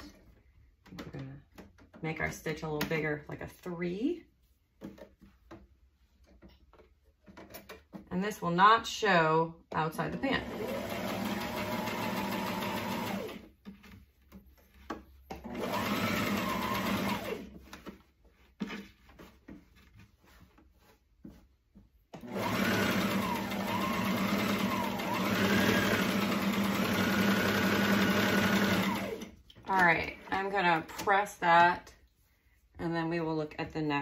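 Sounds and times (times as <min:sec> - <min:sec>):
sewing machine stitching: 0:10.0 - 0:13.5, 0:15.4 - 0:17.6, 0:22.2 - 0:29.9.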